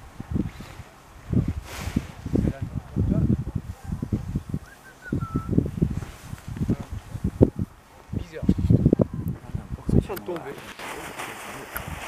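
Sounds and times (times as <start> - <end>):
low uneven rumble: 0.0 - 10.0.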